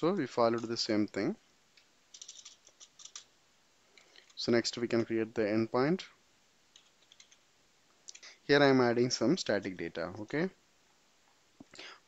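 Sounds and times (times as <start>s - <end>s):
computer keyboard typing: 2.1s - 3.3s, 6.7s - 7.4s.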